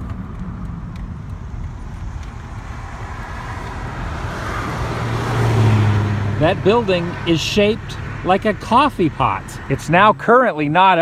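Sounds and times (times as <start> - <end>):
tyre and wind road noise: 0.0 - 11.0.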